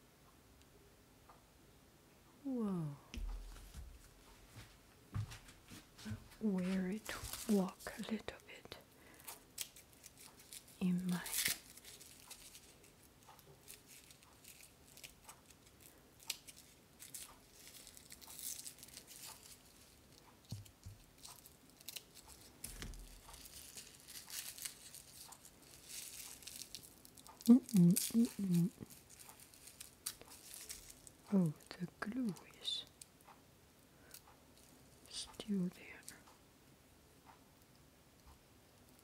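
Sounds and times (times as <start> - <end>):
scissors clicking and scratching: 9.3 - 31.2.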